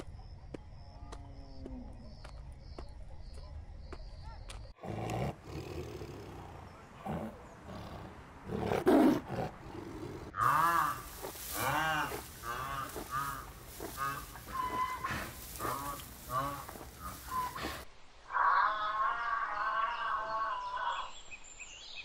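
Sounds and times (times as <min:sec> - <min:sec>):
tiger growling: 0:04.8 - 0:17.8
animal calling: 0:04.8 - 0:21.1.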